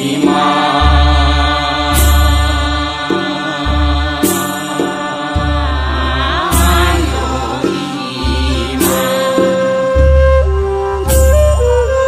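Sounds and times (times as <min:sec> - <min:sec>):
cymbal-like crashes: 0:00.0 - 0:09.7
chant-like devotional singing: 0:00.0 - 0:11.3
deep bass notes: 0:05.3 - 0:09.2.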